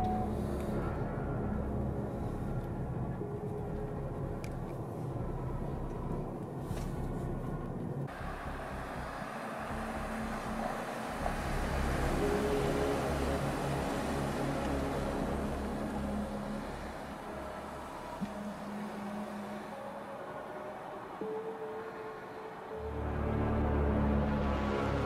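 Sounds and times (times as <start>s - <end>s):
car engine and tyres on asphalt: 0.0s - 25.0s
muffled car road noise: 0.0s - 25.0s.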